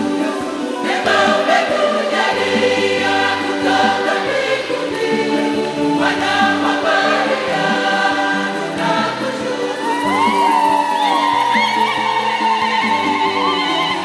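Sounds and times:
choir singing a hymn: 0:00.0 - 0:14.0.

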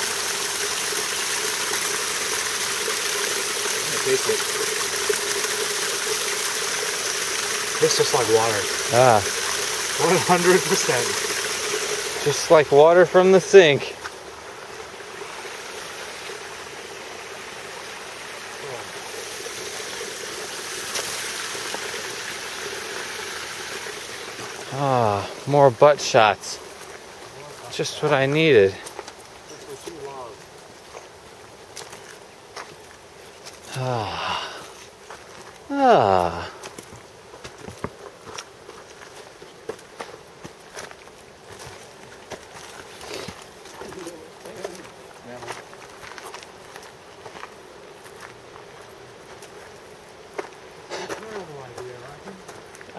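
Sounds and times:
stream water hissing: 0:00.0 - 0:52.9
footsteps on dirt and rock: 0:13.9 - 0:14.9, 0:26.6 - 0:33.7, 0:34.7 - 0:52.9.

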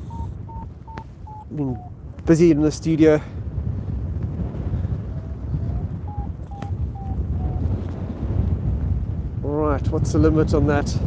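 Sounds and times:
variometer short beeps: 0:00.0 - 0:01.9, 0:06.1 - 0:07.6
wind buffeting microphone: 0:00.0 - 0:11.0.

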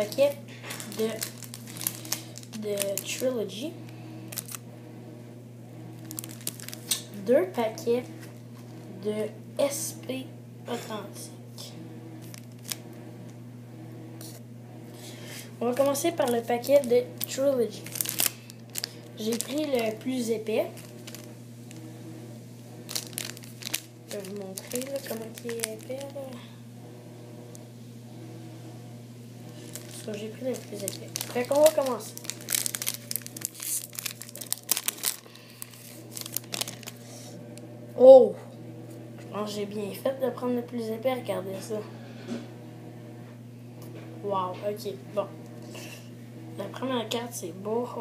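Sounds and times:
wrappers rustling: 0:00.0 - 0:03.6, 0:04.2 - 0:04.6, 0:06.0 - 0:07.1, 0:12.2 - 0:12.9, 0:15.6 - 0:21.8, 0:22.8 - 0:26.4, 0:29.5 - 0:37.4
steady low hum: 0:00.0 - 0:48.0.

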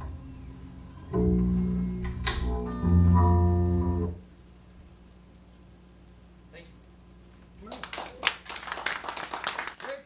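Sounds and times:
audience applause: 0:07.7 - 0:10.0.

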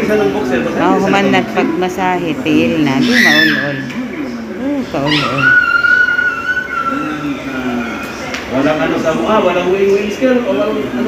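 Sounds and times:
people talking: 0:00.0 - 0:05.8, 0:06.7 - 0:11.0.

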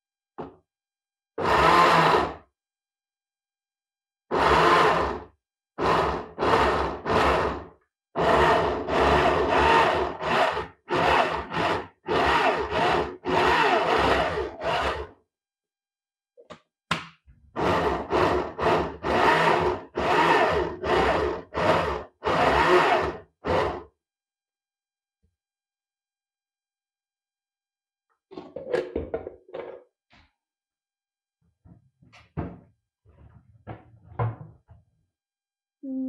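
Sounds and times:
blender pulsing: 0:01.4 - 0:02.4, 0:04.3 - 0:05.2, 0:08.2 - 0:15.1, 0:17.6 - 0:23.8.

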